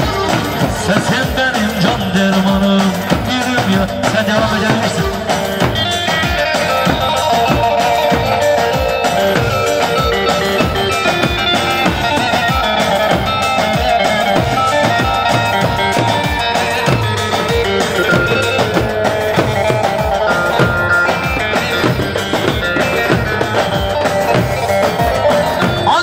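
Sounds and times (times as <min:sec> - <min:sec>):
folk dance band playing: 0:00.0 - 0:26.0
melodic lead line: 0:00.0 - 0:26.0
steady drum beat: 0:00.0 - 0:26.0.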